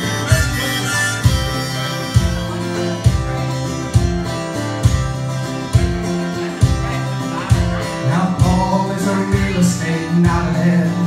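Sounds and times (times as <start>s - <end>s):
harmonica holding notes: 0.0s - 7.9s
acoustic guitar strummed: 0.0s - 11.0s.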